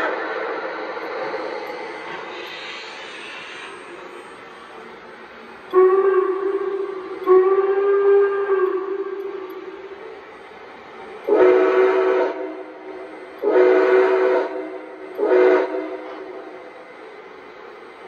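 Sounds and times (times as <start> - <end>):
chime steam whistle blasts: 5.7 - 9.9, 11.1 - 17.2.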